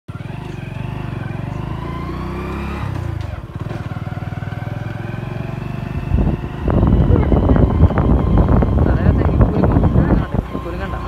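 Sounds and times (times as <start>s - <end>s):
motorcycle engine revving: 0.1s - 11.0s.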